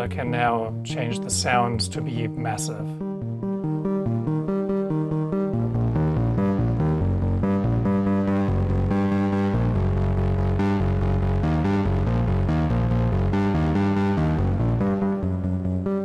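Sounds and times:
fast synth arpeggio: 0:00.8 - 0:16.0.

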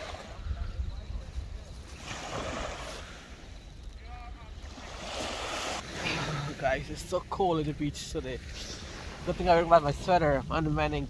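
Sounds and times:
small waves washing onto shore: 0:00.0 - 0:11.0
wind rumbling on microphone: 0:00.0 - 0:11.0.

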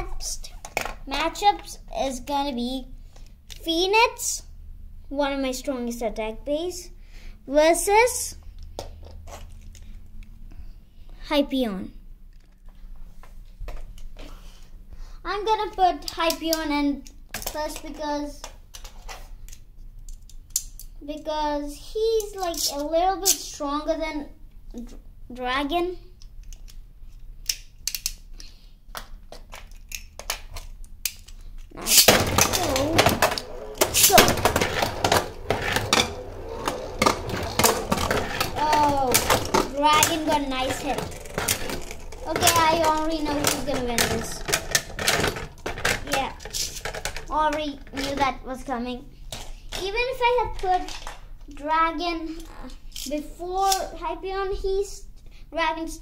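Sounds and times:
spinning tops scraping: 0:31.7 - 0:48.2
spinning tops clacking: 0:31.8 - 0:45.8.

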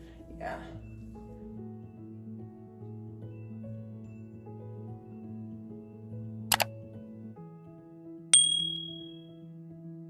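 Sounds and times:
soft background music: 0:00.0 - 0:10.0
notification bell ding: 0:08.4 - 0:09.2.

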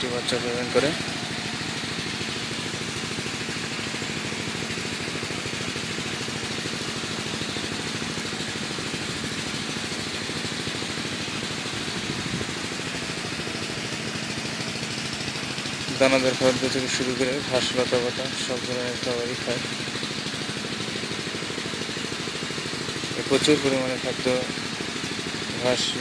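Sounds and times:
mechanical engine-like drone: 0:00.0 - 0:26.0.

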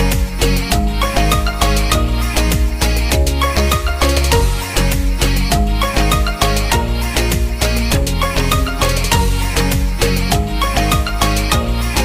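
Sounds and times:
fast beat music with bass: 0:00.0 - 0:12.0.

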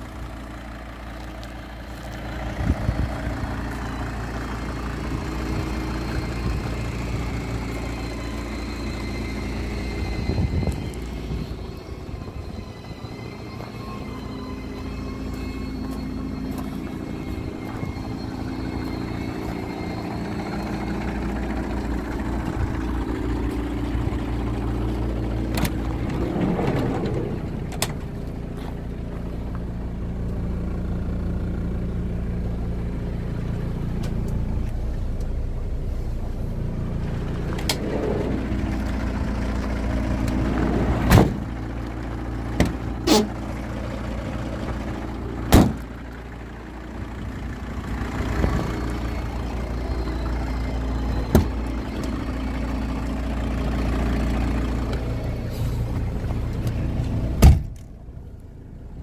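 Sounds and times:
engine idling: 0:00.0 - 0:59.0.

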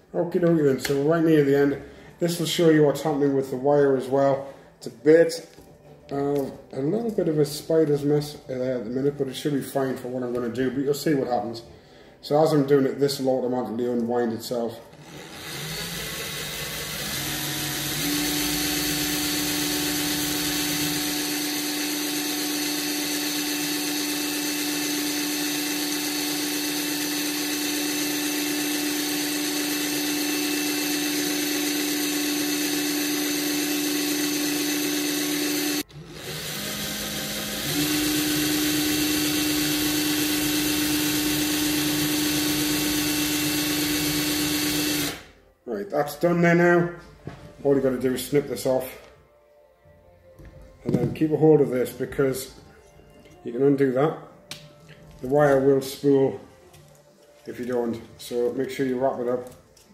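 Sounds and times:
electric drill motor running: 0:15.0 - 0:45.4.

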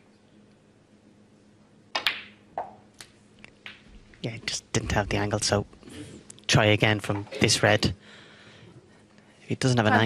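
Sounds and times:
snooker balls knocking: 0:02.0 - 0:02.8
snooker cue ball click: 0:02.0 - 0:02.8.

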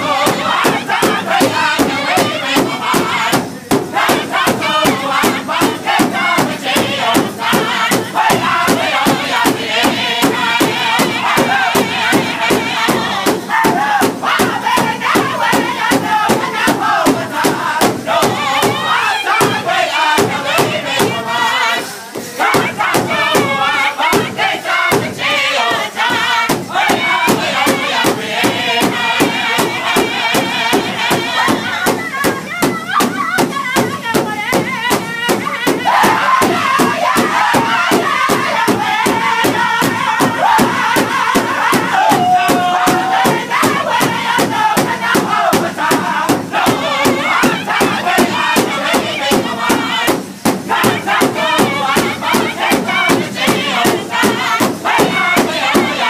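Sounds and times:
group singing in high voices: 0:00.0 - 0:56.0
large drum beating: 0:00.0 - 0:56.0.

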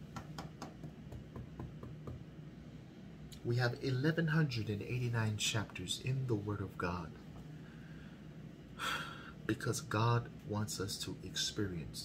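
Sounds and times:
low room hiss: 0:00.0 - 0:12.0
man's sharp intake of breath: 0:07.6 - 0:09.5.

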